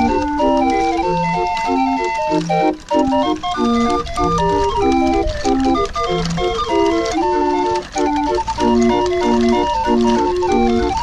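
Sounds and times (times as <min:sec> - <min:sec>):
street organ playing a tune: 0:00.0 - 0:11.0.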